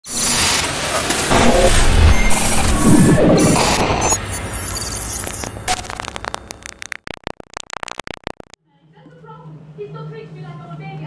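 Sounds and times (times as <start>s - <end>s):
digital glitch static crackles: 1.2s - 8.6s.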